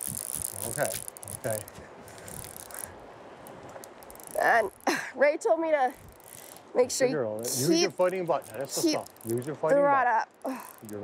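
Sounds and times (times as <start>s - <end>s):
fishing reel drag buzzing: 0.0s - 5.0s, 5.9s - 6.7s, 7.4s - 11.0s.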